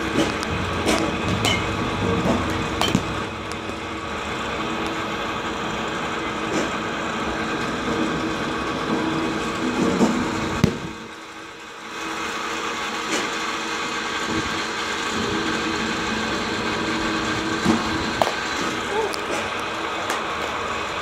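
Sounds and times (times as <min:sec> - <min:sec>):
pitching machine motor hum: 0:00.0 - 0:21.0
sharp crack: 0:10.6 - 0:11.0, 0:17.7 - 0:20.5.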